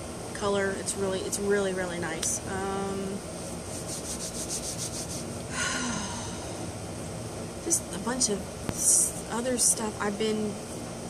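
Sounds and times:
palms rubbing together: 3.6 - 5.3.

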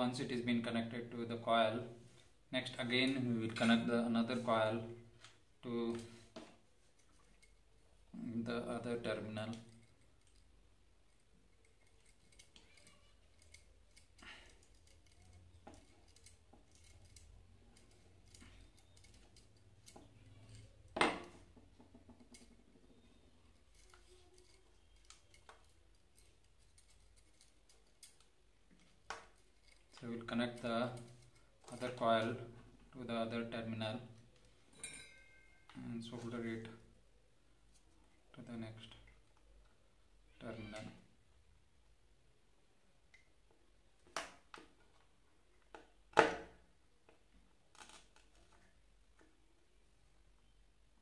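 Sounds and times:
wire leads clicking when handled: 9.4 - 20.9, 21.8 - 32.4.

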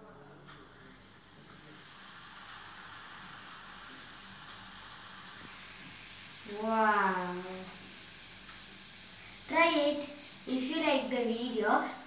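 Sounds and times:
baking soda and vinegar fizzing: 0.0 - 12.0.

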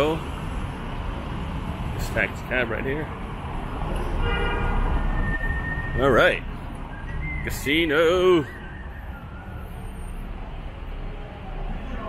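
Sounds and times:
cars idling and moving: 0.0 - 12.0.

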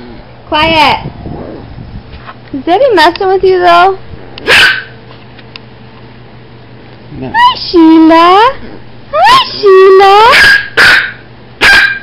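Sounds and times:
small dog barking: 4.4 - 5.0, 10.2 - 12.0.

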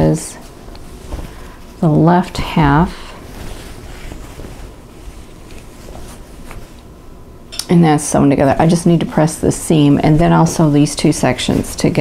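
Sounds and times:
fabric rustling: 0.0 - 7.3, 8.4 - 12.0.

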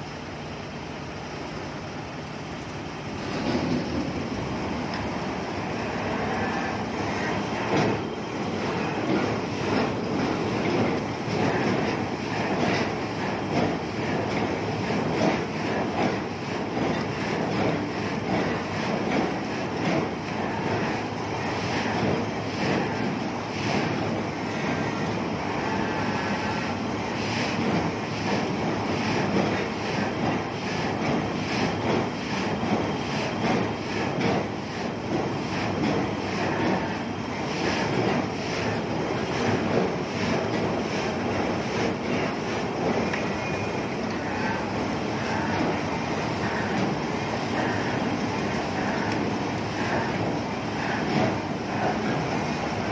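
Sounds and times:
heavy construction machinery rumbling: 0.0 - 52.9.

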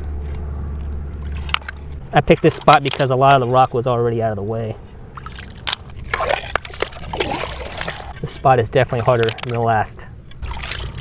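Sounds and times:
shallow seawater sloshing: 4.8 - 9.6
shovel digging through pebbles: 5.4 - 9.8.

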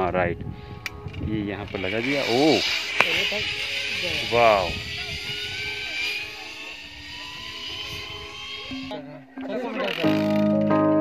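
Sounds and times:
low rumbling noise: 0.0 - 9.0
zipline pulleys whining on cable: 0.8 - 10.4.

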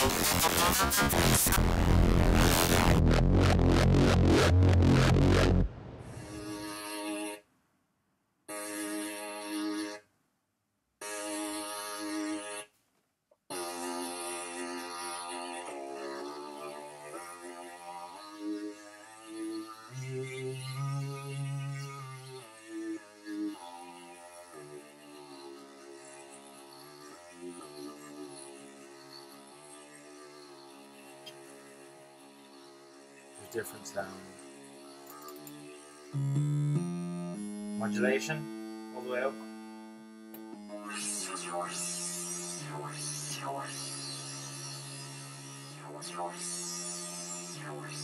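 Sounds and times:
synthesizer tone stepping pitch: 0.0 - 7.4, 35.2 - 48.0.

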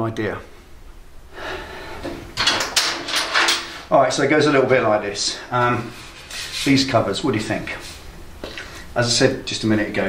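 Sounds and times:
handling rubbing and scraping: 4.5 - 8.6.

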